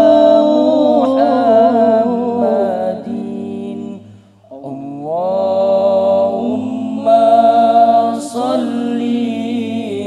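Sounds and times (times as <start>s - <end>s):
vocal group singing a cappella: 0.0s - 10.0s.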